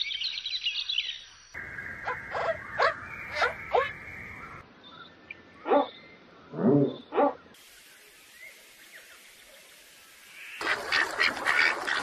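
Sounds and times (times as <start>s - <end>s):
heron calling: 1.6s - 4.6s.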